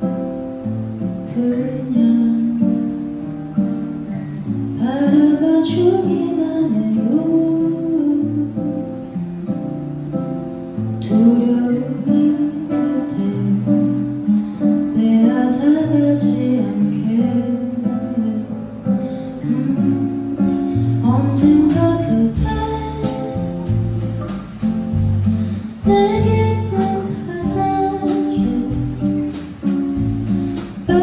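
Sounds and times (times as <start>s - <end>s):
acoustic guitar: 0.0s - 31.0s
jazz band playing: 5.7s - 31.0s.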